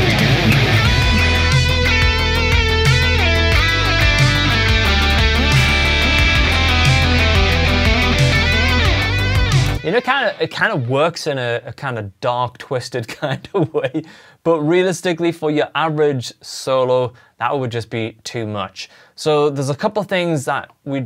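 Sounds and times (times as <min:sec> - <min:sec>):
electric guitar solo with delay: 0:00.0 - 0:10.4.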